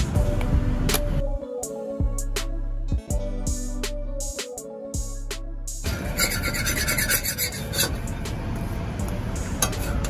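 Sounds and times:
metal spatula scraping griddle: 5.9s - 8.1s.

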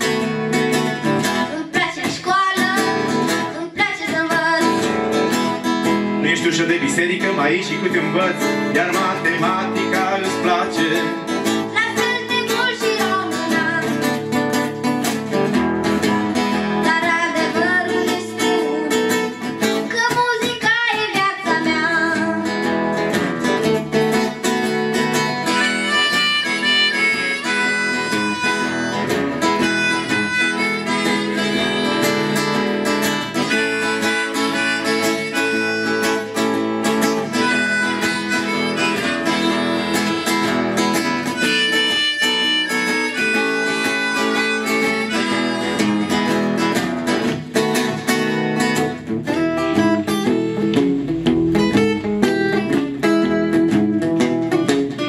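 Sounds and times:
acoustic guitars strumming: 0.0s - 55.0s
harmonica melody: 0.0s - 55.0s.

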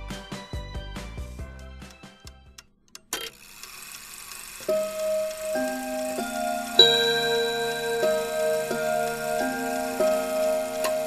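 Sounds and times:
clock ticking: 4.6s - 11.0s
held musical notes building a chord: 4.9s - 11.0s.

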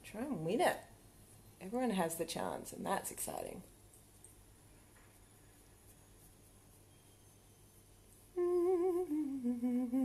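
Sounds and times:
woman humming with vibrato: 8.4s - 10.0s.

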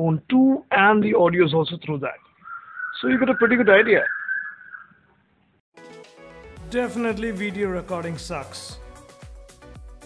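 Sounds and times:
background music: 5.8s - 10.0s.

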